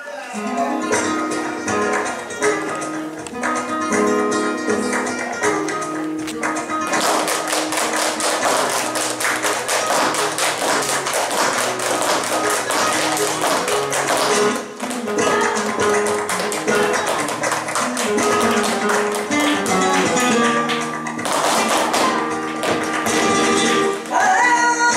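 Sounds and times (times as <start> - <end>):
flamenco guitar: 0.3 - 24.9
handclaps: 4.8 - 24.2
dance footwork: 5.8 - 24.3.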